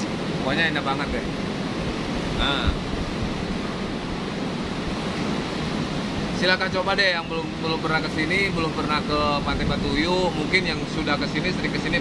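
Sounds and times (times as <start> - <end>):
ocean surf: 0.0 - 12.0
strong wind: 0.0 - 12.0
wind rumbling on microphone: 0.0 - 12.0.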